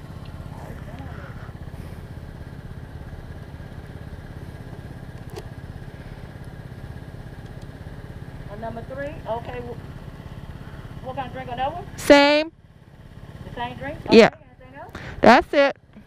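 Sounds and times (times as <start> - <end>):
scooter engine idling: 0.0 - 16.0.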